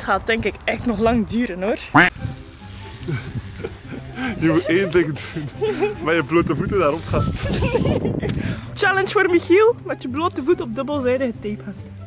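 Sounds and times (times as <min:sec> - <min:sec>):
low background music: 0:01.3 - 0:12.0.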